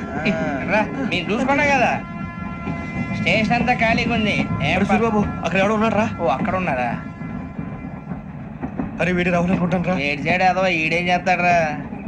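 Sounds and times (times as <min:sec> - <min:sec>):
passenger train rumbling: 0:00.0 - 0:12.0.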